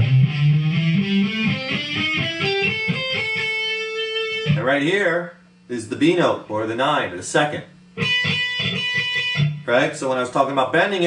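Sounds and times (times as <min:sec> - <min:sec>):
electric guitar plucked notes: 0:00.0 - 0:04.9, 0:08.0 - 0:10.3.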